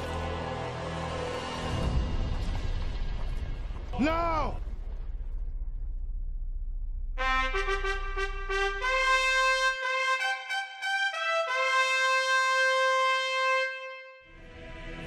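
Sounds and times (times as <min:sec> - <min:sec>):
low rumble: 0:01.2 - 0:09.4
trumpet fanfare: 0:07.2 - 0:14.3.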